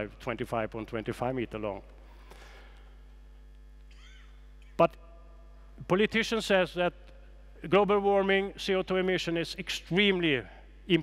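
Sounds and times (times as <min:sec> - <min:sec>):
man speaking: 0:00.0 - 0:01.9, 0:05.8 - 0:07.0, 0:07.6 - 0:11.0
sound system hum: 0:00.0 - 0:11.0.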